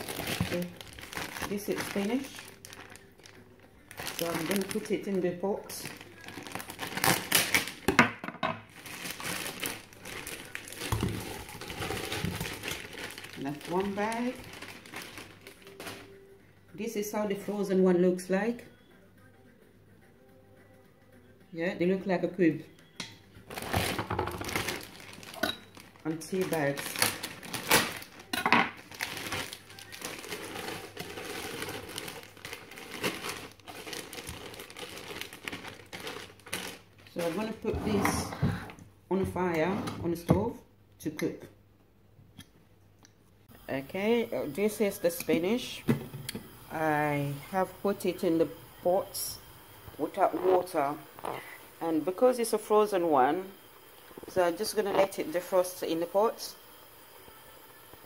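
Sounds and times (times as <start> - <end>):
plastic bag crinkling: 0.0 - 7.9, 8.7 - 16.2, 23.5 - 37.8.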